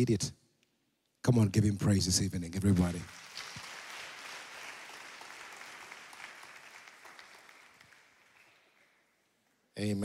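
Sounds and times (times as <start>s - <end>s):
congregation applauding: 2.6s - 9.2s.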